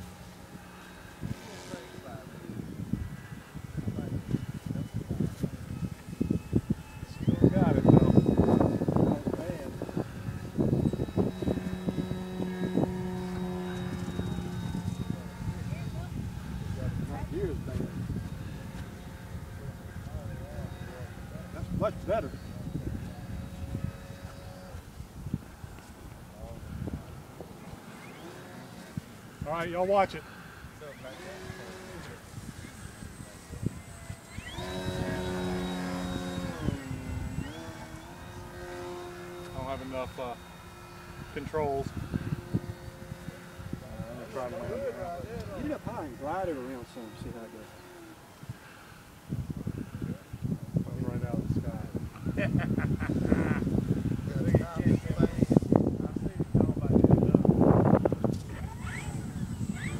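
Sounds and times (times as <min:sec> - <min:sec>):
model plane motor droning: 0:00.0 - 0:59.9.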